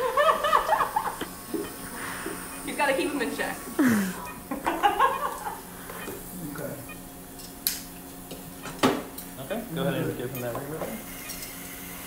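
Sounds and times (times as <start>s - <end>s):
low equipment hum: 0.0s - 12.0s.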